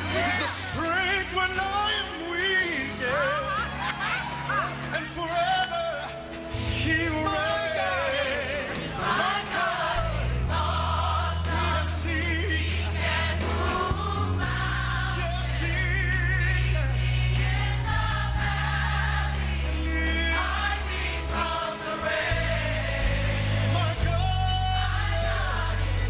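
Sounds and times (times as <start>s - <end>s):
choir singing: 0.0s - 4.7s, 6.8s - 26.0s
band playing: 0.0s - 26.0s.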